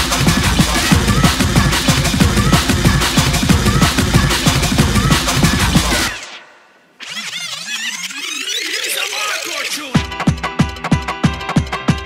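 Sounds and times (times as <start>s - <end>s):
breakcore drums and bass: 0.0s - 6.3s.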